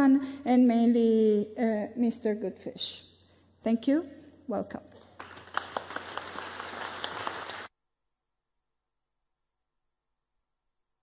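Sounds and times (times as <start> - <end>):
audience applauding: 5.0 - 7.7.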